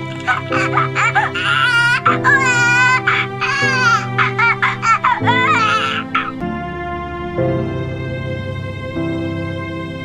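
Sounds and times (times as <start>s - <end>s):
music with held low chords: 0.0s - 10.0s
high-pitched wavering wailing cry: 0.4s - 6.4s.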